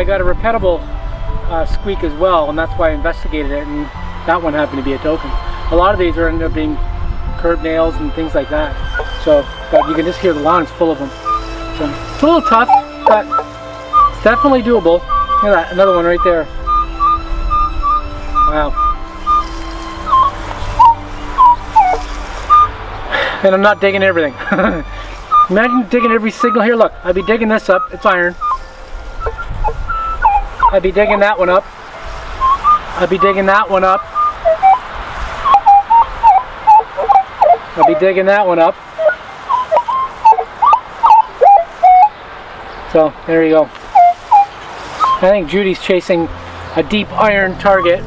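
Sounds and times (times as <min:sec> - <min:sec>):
metal detector squeaky chirps: 0:08.9 - 0:10.6, 0:11.2 - 0:19.5, 0:20.1 - 0:22.7, 0:25.3 - 0:31.4, 0:32.4 - 0:34.8, 0:35.4 - 0:38.1, 0:39.0 - 0:42.1, 0:44.0 - 0:45.4, 0:47.6 - 0:48.0.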